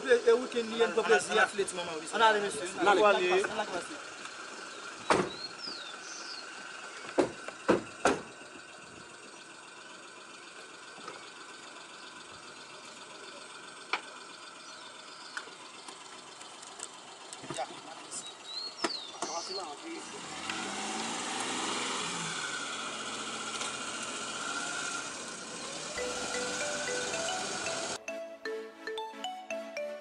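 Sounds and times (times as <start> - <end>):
car idling hum: 0.0 - 28.0
car doors shutting: 5.0 - 5.9, 7.0 - 8.4, 18.8 - 19.4.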